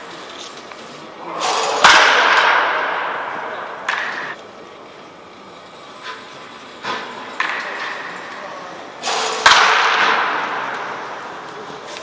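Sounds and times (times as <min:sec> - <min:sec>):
bat cracking a ball: 0:01.4 - 0:04.4, 0:06.9 - 0:08.2, 0:09.0 - 0:11.7.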